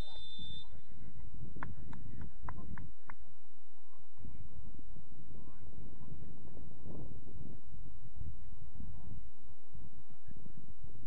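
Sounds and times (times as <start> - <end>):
sharp claps: 1.6 - 3.2.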